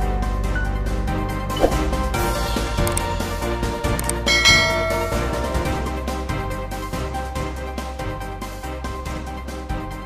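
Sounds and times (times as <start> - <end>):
background music: 0.0 - 10.0
bright bell chime: 4.2 - 6.0.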